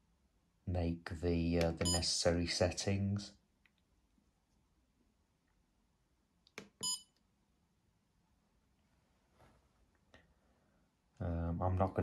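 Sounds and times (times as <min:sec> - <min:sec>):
electronic key beep: 0:01.8 - 0:02.1, 0:06.8 - 0:07.1.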